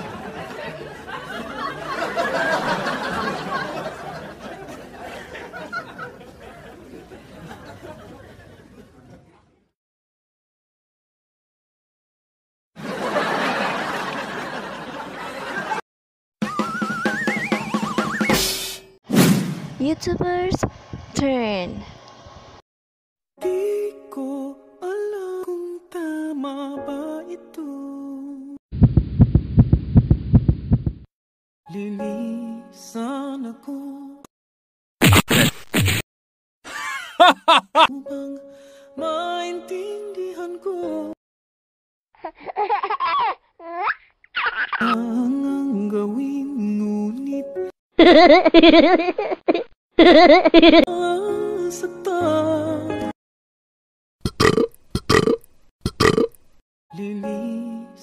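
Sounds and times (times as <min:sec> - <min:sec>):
rapid low thumps: 0:28.8 - 0:31.1
background music: 0:37.2 - 0:41.2, 0:50.9 - 0:53.1.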